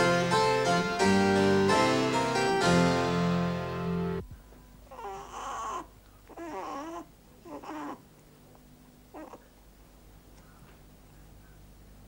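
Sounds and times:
harpsichord music: 0.0s - 4.2s
baby crying: 4.9s - 8.0s, 9.1s - 9.5s.

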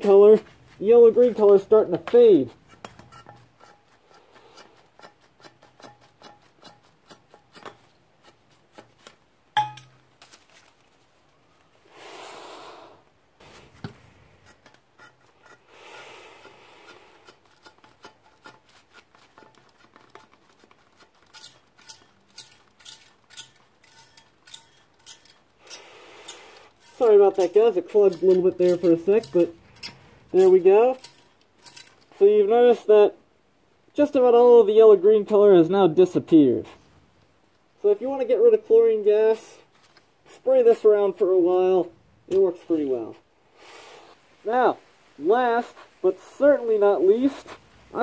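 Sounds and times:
short hisses of spray: 43.5s - 44.2s.

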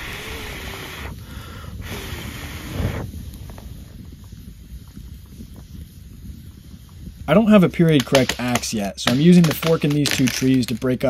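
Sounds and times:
low rumble: 0.0s - 7.2s
campfire crackling: 0.0s - 11.0s
wind noise on microphone: 0.0s - 11.0s.

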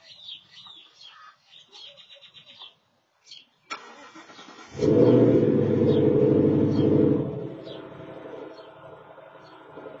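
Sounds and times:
car exhaust booming: 4.8s - 10.0s.

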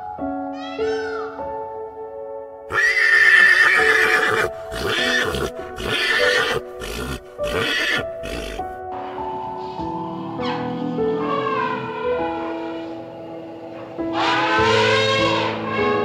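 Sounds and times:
piano music: 0.0s - 16.0s
horse whinnying: 2.7s - 8.7s.

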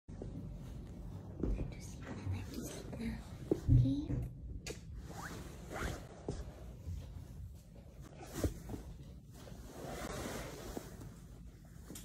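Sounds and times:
woman whispering: 1.5s - 3.5s.

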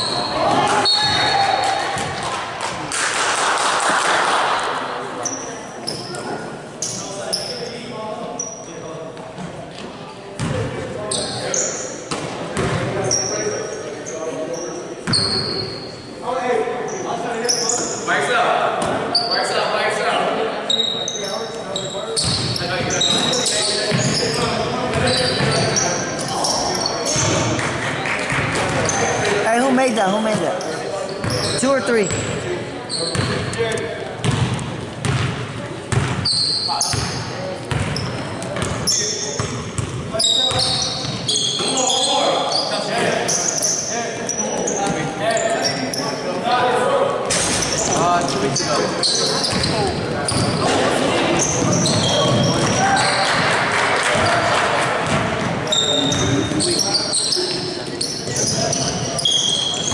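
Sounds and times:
sneakers squeaking: 0.0s - 2.2s, 5.2s - 16.2s, 16.8s - 18.1s, 18.8s - 19.8s, 20.6s - 27.6s, 28.3s - 46.3s, 47.3s - 53.5s, 54.1s - 59.9s.

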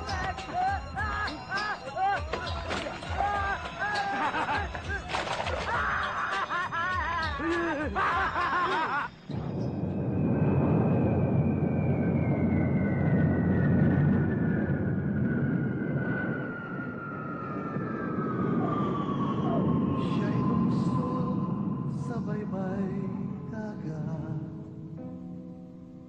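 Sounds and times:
men laughing loudly: 0.2s - 9.2s
jet airliner engine rumble and whine: 9.7s - 23.3s.

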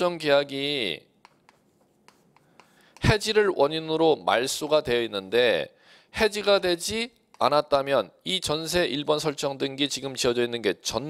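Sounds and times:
chalk on a chalkboard: 1.2s - 3.3s.

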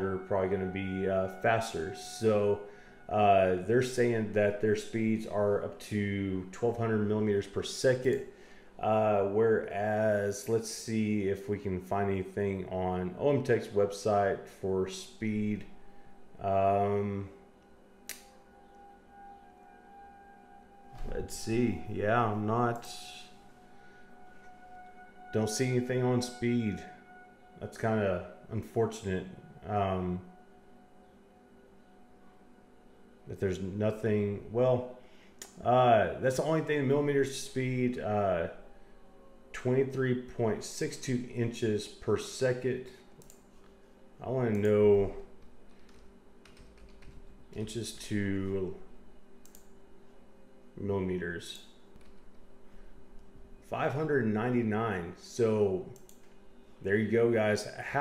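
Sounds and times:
distant warning siren: 0.0s - 45.9s, 52.5s - 58.0s
computer keyboard keystrokes: 45.7s - 47.2s.

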